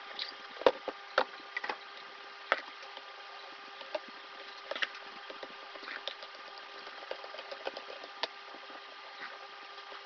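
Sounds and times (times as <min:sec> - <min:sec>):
steady low hum: 0:00.0 - 0:10.0
snack crunching while chewing: 0:03.8 - 0:09.4.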